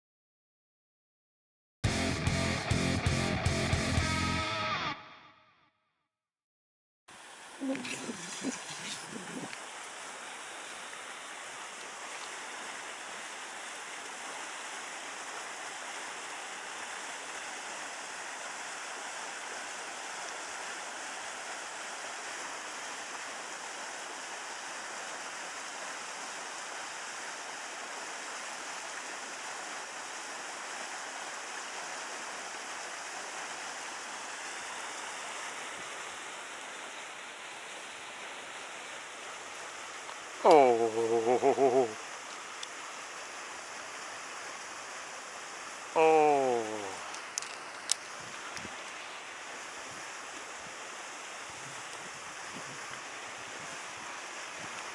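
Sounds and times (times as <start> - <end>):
water rushing in ditch: 7.1 - 54.9.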